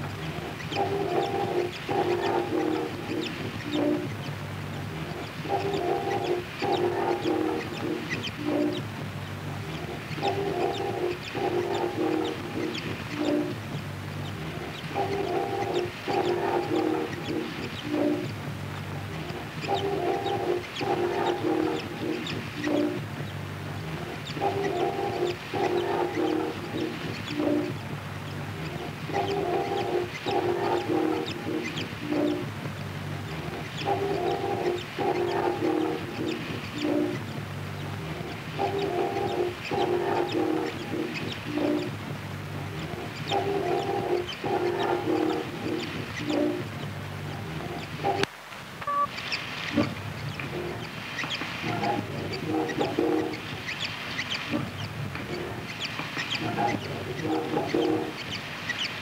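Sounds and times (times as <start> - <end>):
looped clustered tones: 0.0 - 58.8
rough crackly noise bed: 0.0 - 59.0.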